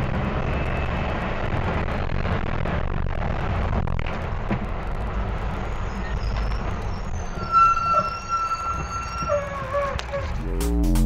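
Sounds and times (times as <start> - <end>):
bus engine rumbling: 0.0 - 11.0
high squeal: 5.6 - 10.5.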